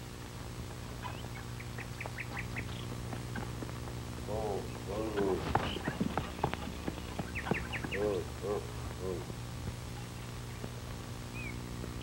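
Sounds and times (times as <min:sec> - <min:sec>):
steady low hum: 0:00.0 - 0:12.0
bird chirping: 0:01.0 - 0:03.5, 0:04.5 - 0:08.3, 0:11.3 - 0:11.6.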